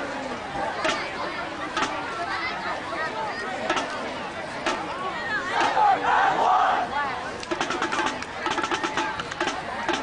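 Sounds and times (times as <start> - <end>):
voices yelling and cheering: 0.0 - 7.4
rhythmic knocking: 3.7 - 4.0, 4.6 - 4.9, 7.4 - 10.0.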